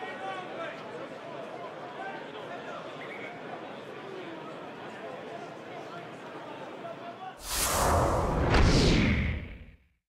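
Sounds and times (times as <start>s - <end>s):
stadium crowd murmur: 0.0s - 7.4s
whoosh sound effect: 7.4s - 9.8s.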